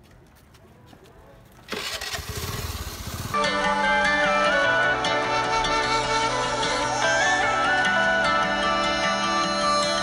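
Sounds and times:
motorcycle engine running: 1.7 - 3.4
folk-style background music: 3.4 - 10.0.

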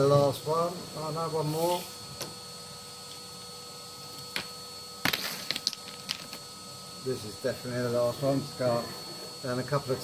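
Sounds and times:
vacuum cleaner running: 0.0 - 10.0.

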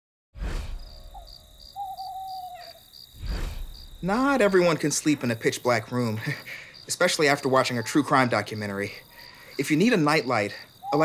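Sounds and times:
crickets chirping: 0.7 - 11.0
long wavering hoot: 1.8 - 2.8.

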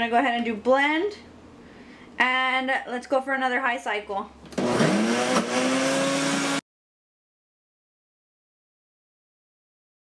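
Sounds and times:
blender motor grinding nuts: 4.5 - 6.6.

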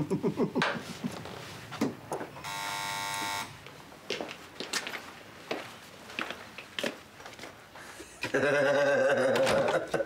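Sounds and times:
electric doorbell buzzer: 2.4 - 3.6.

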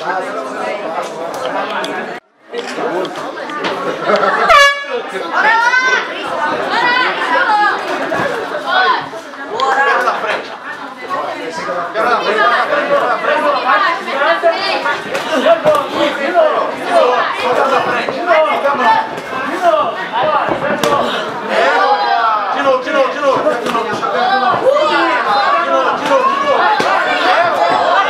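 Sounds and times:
crowd chatter: 0.0 - 28.0
people shouting: 20.1 - 28.0.

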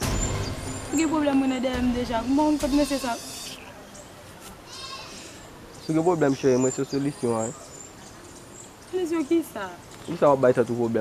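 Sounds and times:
faint outdoor background noise: 0.0 - 11.0
woman speaking: 0.9 - 3.6, 8.9 - 9.8.

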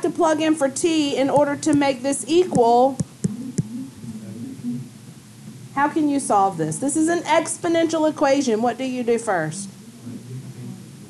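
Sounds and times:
stylus tapping on screen: 1.3 - 3.8.

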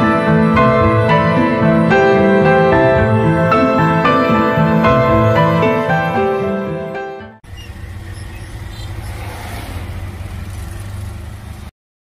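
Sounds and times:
car and motorbike traffic: 7.4 - 11.7
engine droning: 7.4 - 11.7.

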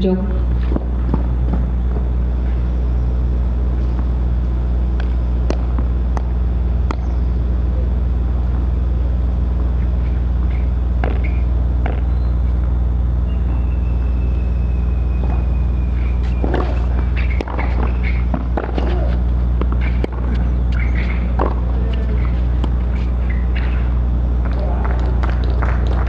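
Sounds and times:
low rumbling hum: 0.0 - 26.0.

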